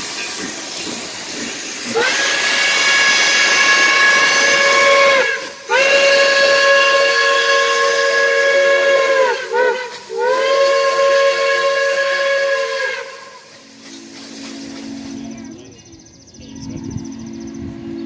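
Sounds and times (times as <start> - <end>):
chime steam whistle blasts: 1.9 - 15.5.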